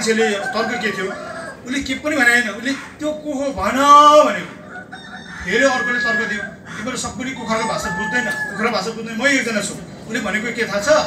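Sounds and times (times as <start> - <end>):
rooster crowing: 0.0 - 1.9, 4.5 - 9.0.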